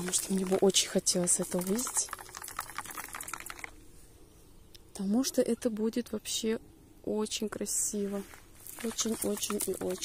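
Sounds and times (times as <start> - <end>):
twigs and leaves rustling: 0.0 - 3.8, 7.9 - 10.0.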